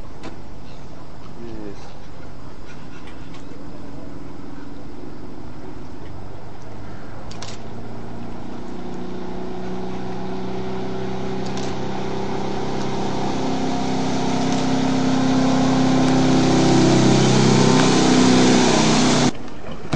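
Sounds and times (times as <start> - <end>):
boat engine running: 8.2 - 19.9
water rushing hiss: 9.6 - 19.3.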